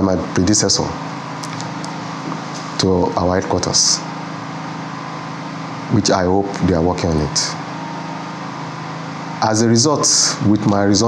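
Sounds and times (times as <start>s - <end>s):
low hum with hiss: 0.0s - 11.0s.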